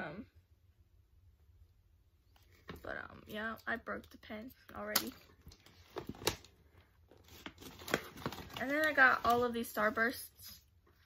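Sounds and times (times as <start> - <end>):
plastic packaging crinkling: 5.1 - 10.0.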